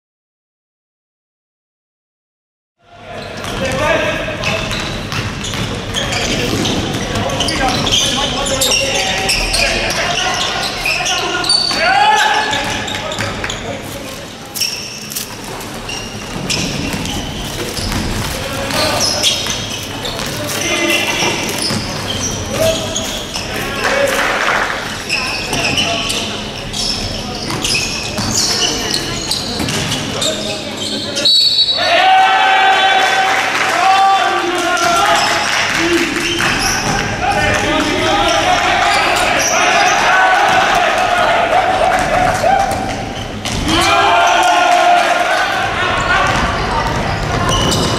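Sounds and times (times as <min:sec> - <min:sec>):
basketball bouncing on court: 0:04.4 - 0:08.1, 0:16.0 - 0:20.4, 0:21.0 - 0:23.5, 0:36.4 - 0:38.4, 0:46.2 - 0:47.9
players calling out: 0:15.7 - 0:47.9.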